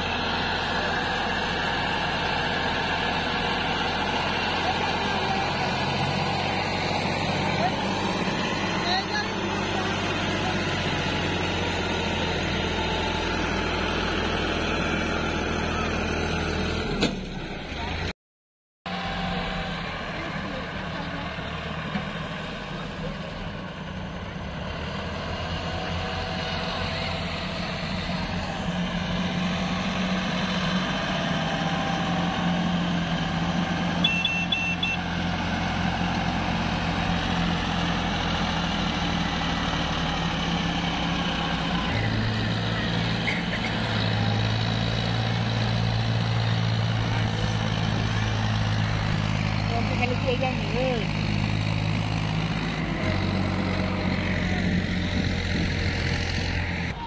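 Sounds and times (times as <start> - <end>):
deep tractor engine hauling: 0.0 - 18.1, 18.9 - 57.0
diesel tractor engines running: 0.0 - 18.1, 18.9 - 57.0.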